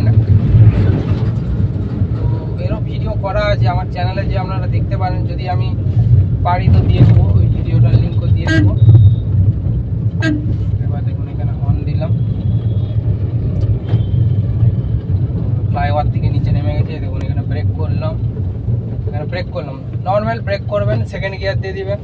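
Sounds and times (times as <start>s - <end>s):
car engine and road rumble: 0.0s - 22.0s
faint car horn toots: 8.4s - 9.2s, 10.2s - 10.7s.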